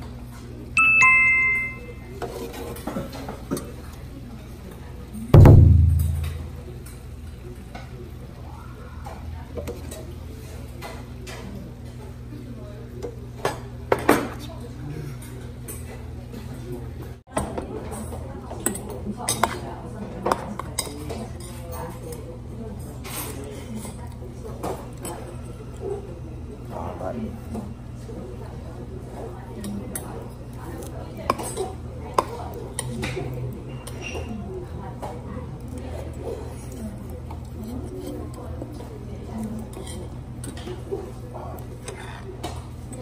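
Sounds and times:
low background hum: 0.0 - 20.0
metal spoon clinking on steel bowl: 0.8 - 2.1
tableware clinking on metal bowl: 0.8 - 3.7.

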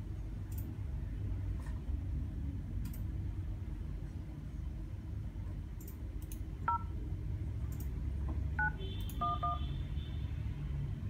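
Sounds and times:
phone keypad touch-tone beeps: 6.7 - 6.9, 8.6 - 9.7.

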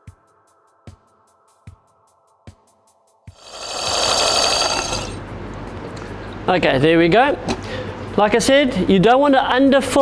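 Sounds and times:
soft background music with beat: 0.0 - 3.4, 5.2 - 9.0
line-spooling machine whirring: 3.4 - 5.2.

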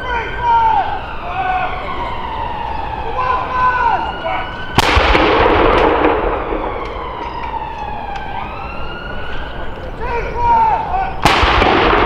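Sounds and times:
siren wailing: 0.0 - 11.3
gun firing boom: 4.8 - 7.4, 11.2 - 12.0.

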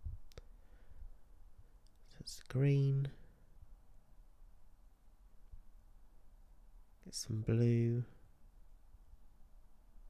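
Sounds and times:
faint sharp click: 0.2 - 0.5.

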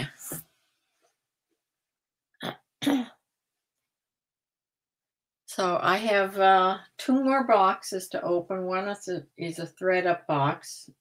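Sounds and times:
woman clearing throat: 2.4 - 3.2.

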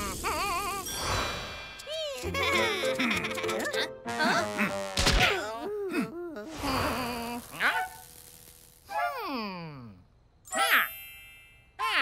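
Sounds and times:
cartoon character vocalisation: 1.9 - 7.8, 11.8 - 12.0
bright bell-like chime: 10.5 - 11.8.

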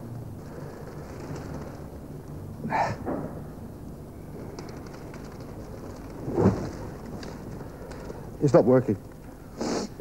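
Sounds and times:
fire rumbling: 4.3 - 9.2.

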